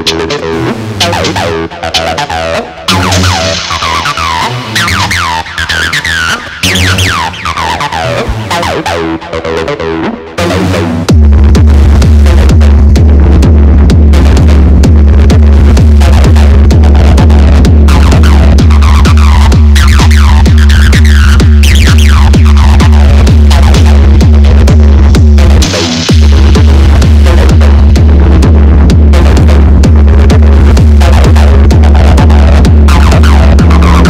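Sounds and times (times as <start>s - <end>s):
heavy sustained bassline: 0.0s - 34.0s
kick drum: 10.4s - 34.0s
rush of noise: 10.8s - 34.0s.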